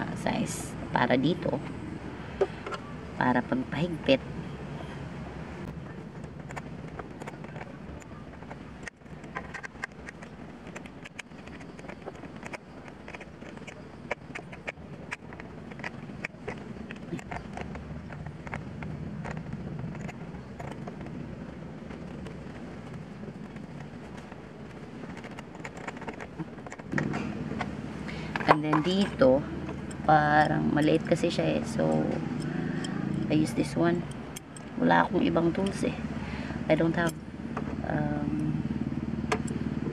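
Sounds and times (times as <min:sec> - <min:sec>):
steady background hum: 0:00.0 - 0:39.9.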